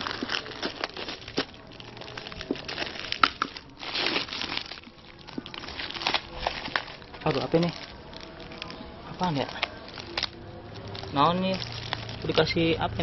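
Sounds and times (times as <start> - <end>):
parcel wrapping torn and crinkled: 0.0 - 13.0.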